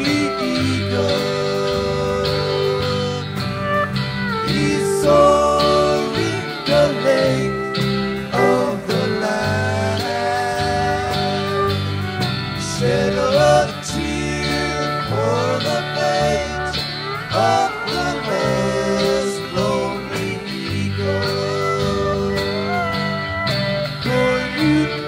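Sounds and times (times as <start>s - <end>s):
bending guitar lead lines: 0.0s - 25.0s
country-rock band playing: 0.0s - 25.0s
pedal steel guitar: 0.0s - 25.0s.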